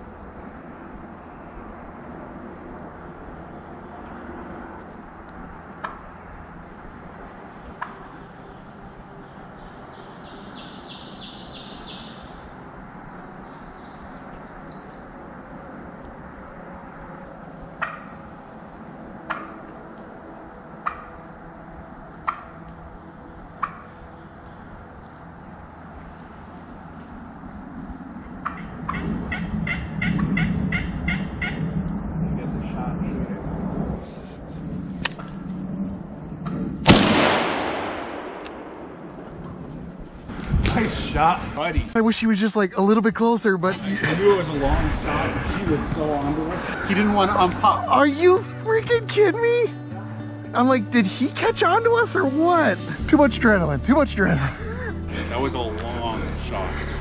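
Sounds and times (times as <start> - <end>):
high bird trill: 0.0 - 0.8, 8.1 - 12.6, 13.3 - 15.3, 16.2 - 18.3
turkey gobbling: 17.8 - 18.2, 19.3 - 19.6, 20.8 - 21.2, 28.4 - 31.6.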